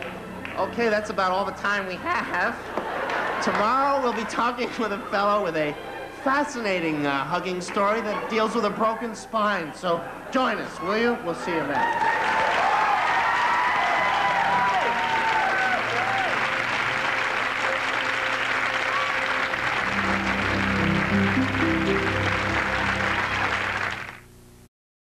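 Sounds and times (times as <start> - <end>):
audience applauding: 2.8 - 4.2, 11.8 - 24.3
shouts and whoops: 11.7 - 16.5
low steady music: 14.1 - 24.1.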